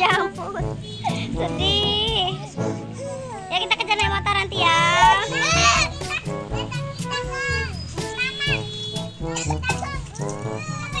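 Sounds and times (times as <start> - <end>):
music: 0.0 - 11.0.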